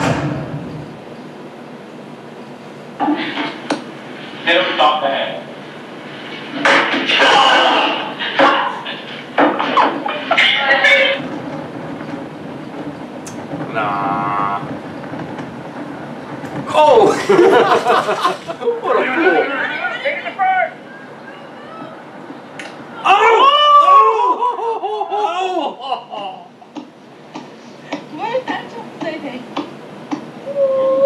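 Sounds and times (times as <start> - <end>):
steady background noise: 0.0 - 31.0
faint steady hiss: 1.0 - 11.3.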